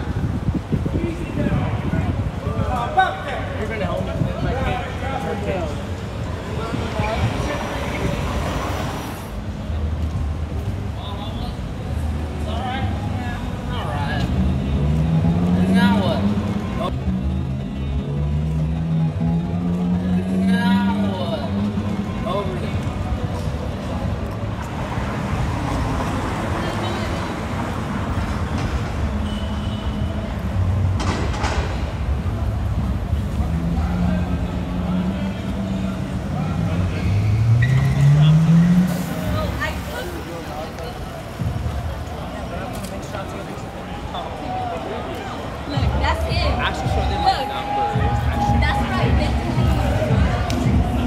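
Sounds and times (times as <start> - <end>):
passers-by talking: 0.0 - 51.0
traffic: 0.0 - 51.0
voices of people: 0.0 - 51.0
car engine revving: 32.0 - 39.8
music: 45.8 - 51.0.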